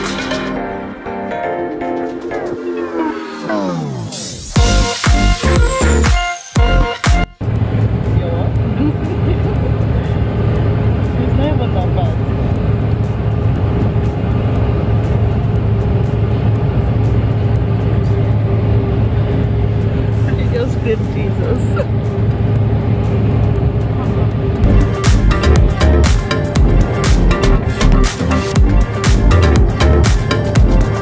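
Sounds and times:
airliner cabin drone: 0.0s - 6.0s, 6.6s - 31.0s
constant low hum: 6.6s - 31.0s.

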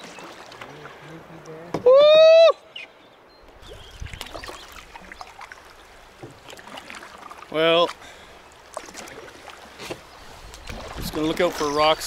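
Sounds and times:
water splashing from paddling: 0.0s - 1.9s, 3.6s - 12.0s
canoe knocks: 1.6s - 1.9s, 6.1s - 7.0s, 9.8s - 10.1s
man whooping: 1.8s - 2.6s.

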